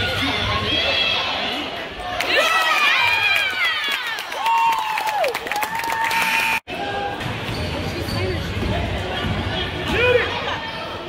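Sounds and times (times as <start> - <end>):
murmur of spectators: 0.0 - 11.0
sneakers squeaking: 7.2 - 10.0.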